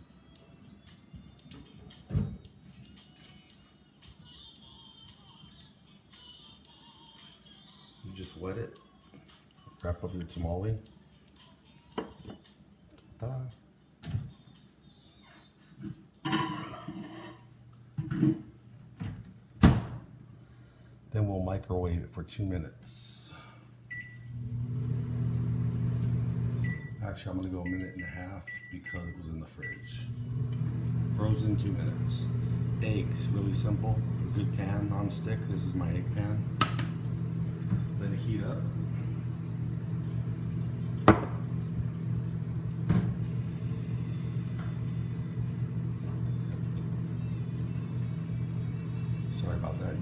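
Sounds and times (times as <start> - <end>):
microwave oven humming: 23.3 - 50.0
microwave keypad beep: 23.9 - 24.3, 26.6 - 27.0, 27.6 - 30.0.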